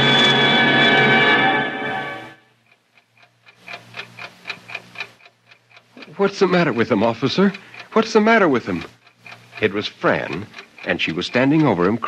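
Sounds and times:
clock ticking: 2.5 - 12.0.

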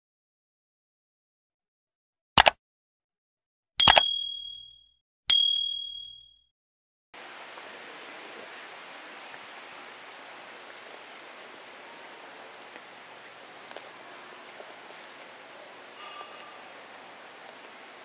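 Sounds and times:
bell-like dings: 3.8 - 6.5, 16.0 - 16.6
room ambience hiss: 7.2 - 18.0.

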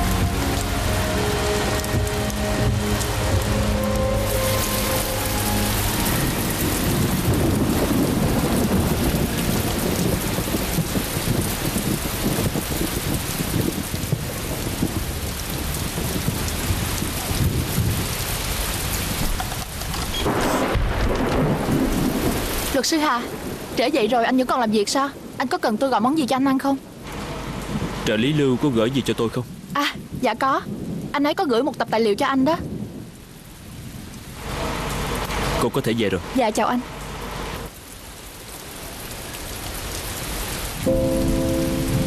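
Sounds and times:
thunder rumbling: 0.0 - 35.6, 40.3 - 42.0
heavy rain falling: 0.0 - 42.0.

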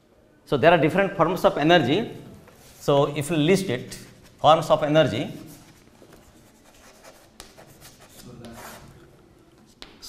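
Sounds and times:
chalk scratching on blackboard: 5.4 - 9.0
chalk tapping: 5.4 - 10.0.

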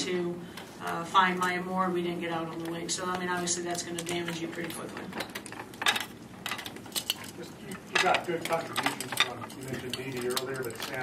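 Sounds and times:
light clicks and clinks: 5.5 - 11.0.

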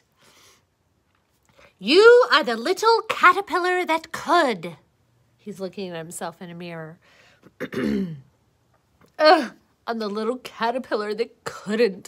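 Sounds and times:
woman clearing her throat: 7.6 - 8.3, 9.2 - 9.6.

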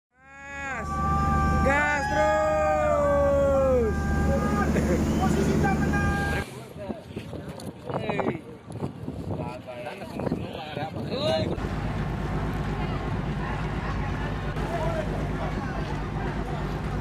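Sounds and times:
wind: 0.1 - 17.0
men cheering and whooping: 0.2 - 6.4
boat engine rumbling: 0.4 - 6.4, 11.4 - 17.0.

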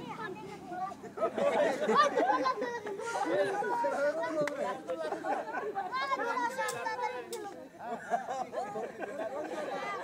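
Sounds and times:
children and onlookers chattering: 0.0 - 10.0.

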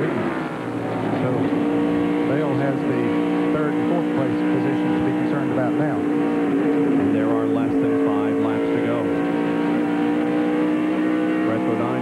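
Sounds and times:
race car engine at speed: 0.0 - 12.0.

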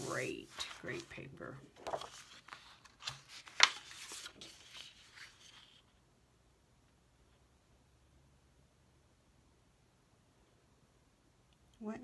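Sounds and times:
paper sheets rustling and flapping: 0.0 - 5.9.

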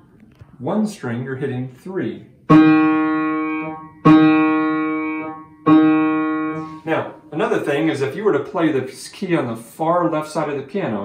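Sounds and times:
upright piano note: 2.5 - 7.3.

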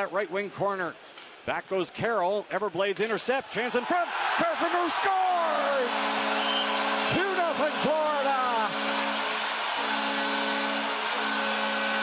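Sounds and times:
crowd cheering: 3.6 - 12.0
goal horn held chord: 5.4 - 12.0.

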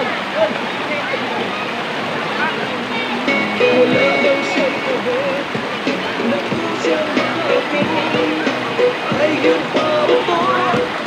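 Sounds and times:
distant shouts and chatter: 0.0 - 11.0
river water rushing over rocks: 0.0 - 11.0.

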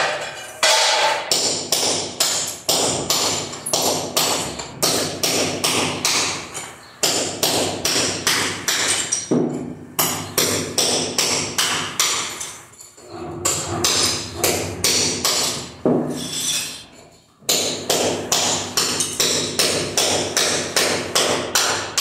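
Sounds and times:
hammer chipping ceramic tiles: 0.0 - 16.8, 17.4 - 22.0.

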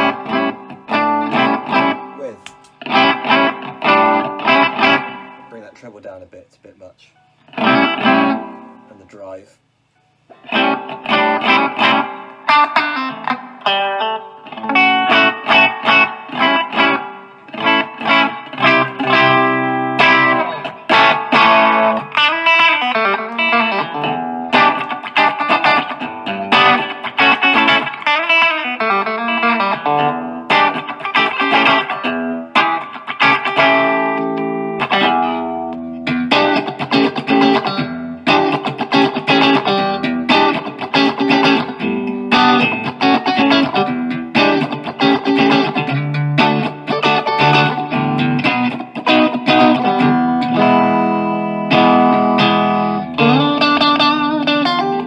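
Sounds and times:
overdriven electric guitar riffs: 0.0 - 5.8, 7.2 - 9.0, 9.7 - 55.0.

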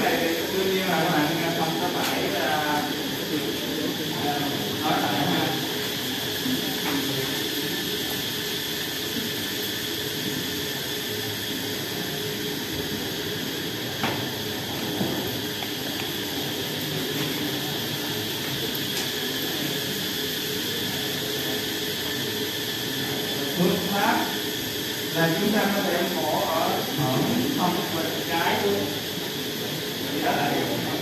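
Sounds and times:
room hiss and hum: 0.0 - 31.0.

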